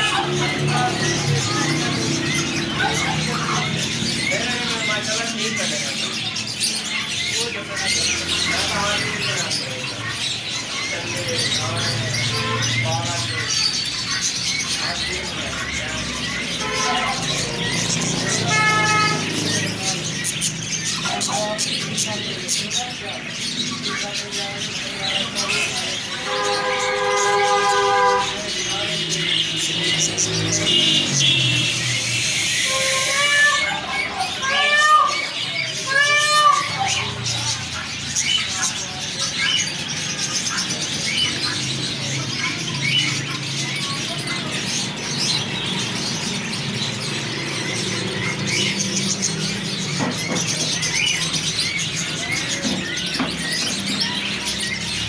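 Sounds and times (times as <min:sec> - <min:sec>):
caged birds chirping: 0:00.0 - 0:55.0
vehicle horn: 0:16.6 - 0:17.4, 0:18.2 - 0:19.3, 0:26.2 - 0:28.6, 0:32.5 - 0:33.9.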